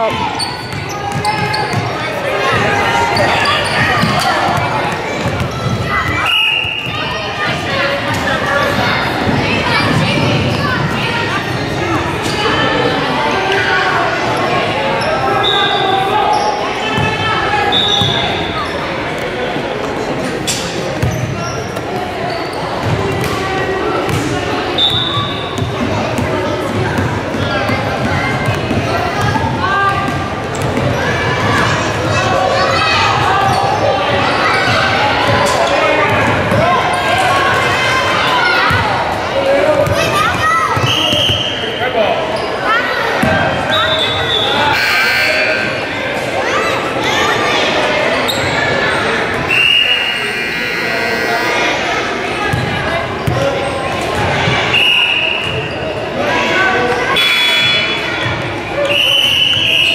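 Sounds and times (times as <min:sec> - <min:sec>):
indistinct echoing voices: 0:00.0 - 0:59.9.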